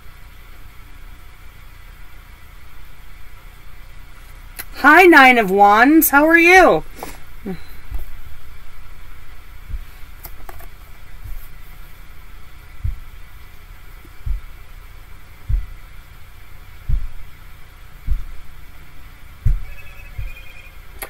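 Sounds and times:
steady low hum: 0.0 - 21.0
dull low thumps: 7.3 - 10.2, 11.0 - 20.4.

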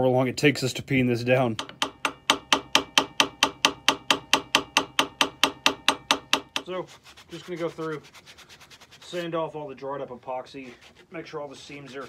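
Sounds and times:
hammer blows on metal: 1.5 - 6.8.

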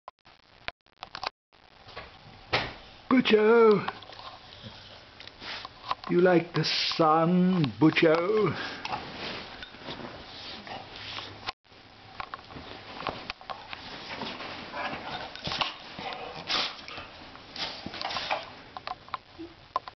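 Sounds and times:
sheet rustling: 8.5 - 11.4, 12.5 - 18.6.

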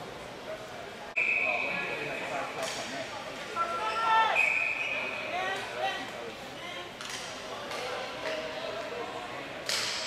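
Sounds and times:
referee's whistle: 1.2 - 2.1, 3.9 - 5.2.

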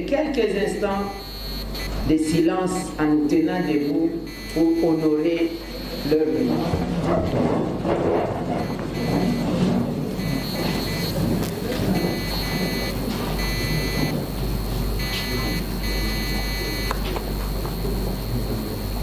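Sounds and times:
low electrical hum: 0.0 - 19.0
high electronic beeping: 0.5 - 7.4, 8.6 - 9.5, 10.1 - 19.0.

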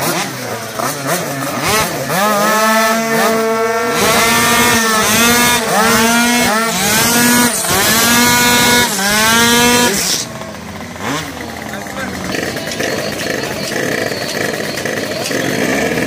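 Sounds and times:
scooter engine revving: 0.0 - 16.0.

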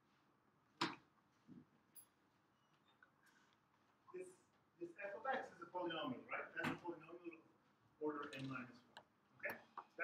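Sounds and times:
man talking: 4.1 - 10.0.

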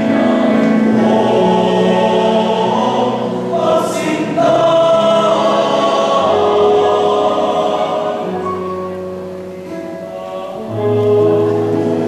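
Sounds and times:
male choir singing chords: 0.0 - 12.0.

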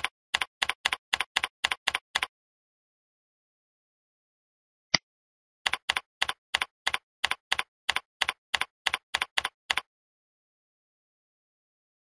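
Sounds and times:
computer keyboard typing: 0.0 - 2.3, 5.7 - 9.9.

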